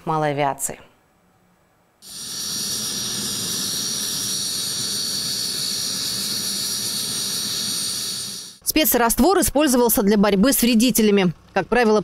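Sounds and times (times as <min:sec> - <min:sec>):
helicopter turbine engines whining: 0:02.0 - 0:08.6.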